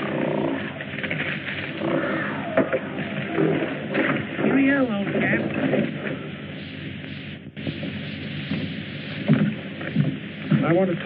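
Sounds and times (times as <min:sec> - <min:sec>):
film soundtrack hiss: 0:00.0 - 0:11.0
man speaking: 0:10.5 - 0:11.0.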